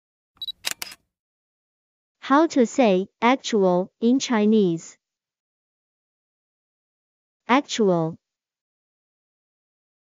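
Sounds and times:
quick clicks: 0.4s - 1.0s.

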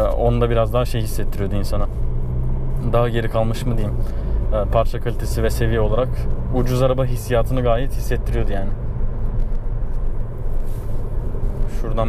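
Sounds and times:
car cabin road and engine noise: 0.0s - 12.0s.

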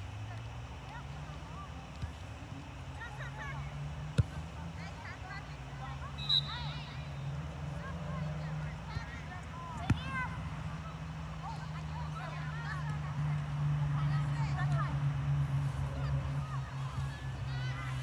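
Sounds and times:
short high-pitched whistle: 6.2s - 6.9s.

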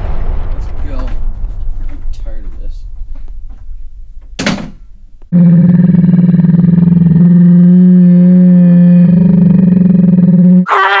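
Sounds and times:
low electronic drone: 5.2s - 10.6s.

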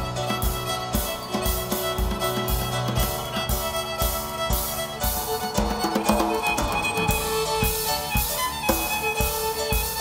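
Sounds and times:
fiddle: 0.0s - 10.0s
keyboard: 0.0s - 10.0s.

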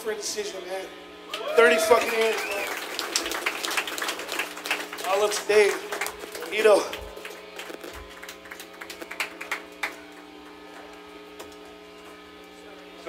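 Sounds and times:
amplifier hum and buzz: 0.0s - 13.0s.

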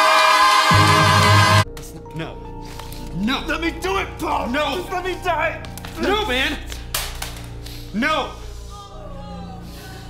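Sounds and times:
musical backing: 0.0s - 10.0s.

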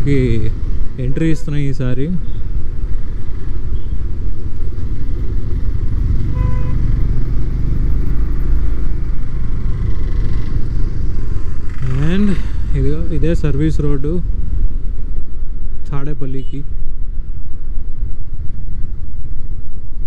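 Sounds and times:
motorcycle engine cruising: 2.2s - 15.9s.

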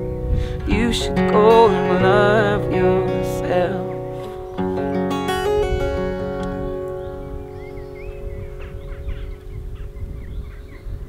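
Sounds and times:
acoustic guitar chord ringing: 0.0s - 9.7s
wind rumble on microphone: 0.0s - 11.0s
small birds chirping: 2.6s - 11.0s.

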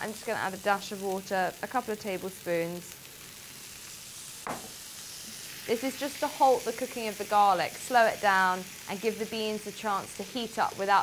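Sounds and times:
food sizzling in frying pan: 0.0s - 11.0s
brief knock: 4.4s - 4.8s.

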